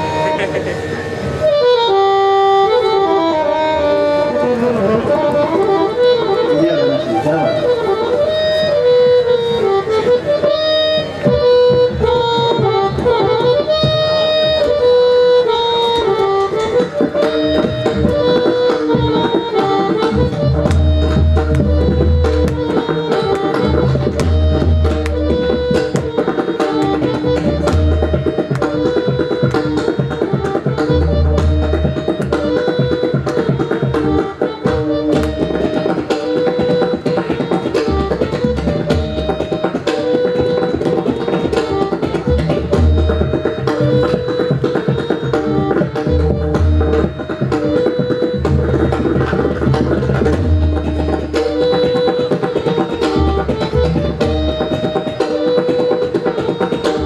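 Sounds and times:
harmonium melody: 0.0s - 57.0s.

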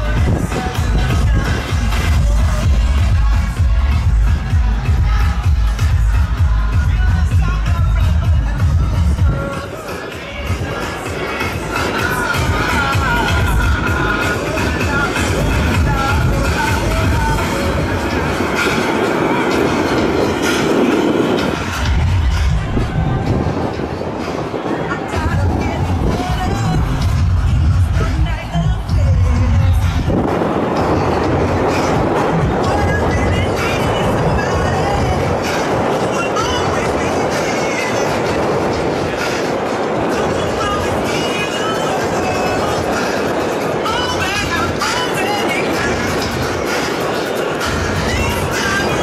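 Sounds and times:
crowd shouting and whooping: 0.0s - 49.0s
dance music over sound system: 0.0s - 49.0s
steady rushing noise: 0.0s - 49.0s.

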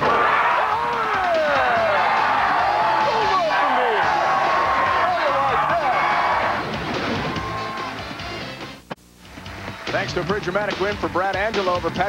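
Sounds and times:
crowd shouting and cheering: 0.0s - 8.6s
music: 0.0s - 12.0s.

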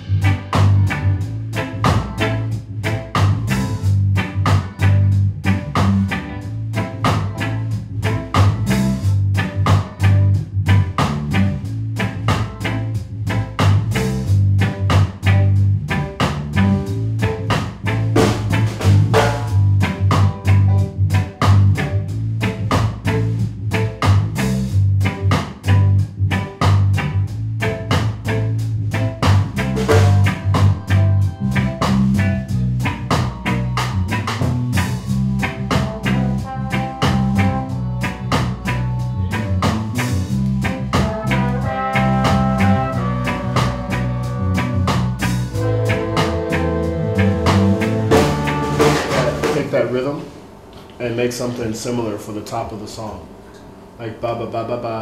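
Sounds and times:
drum kit beat: 0.0s - 51.0s
soul band playing: 0.0s - 51.1s
bass line: 0.0s - 51.4s
held horn notes: 29.8s - 51.9s.

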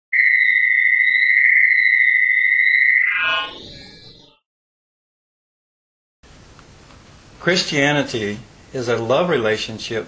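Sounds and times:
high electronic tone: 0.2s - 4.4s
falling electronic sweep: 2.2s - 4.4s.

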